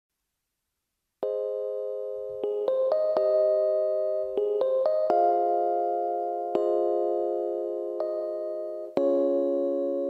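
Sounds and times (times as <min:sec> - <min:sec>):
keyboard chord held: 0:01.2 - 0:10.0.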